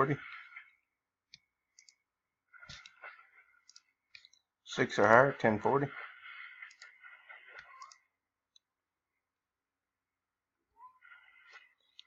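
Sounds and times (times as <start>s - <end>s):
computer mouse clicks: 1.3s - 2.0s, 2.6s - 4.4s, 6.6s - 8.7s, 11.8s - 12.0s.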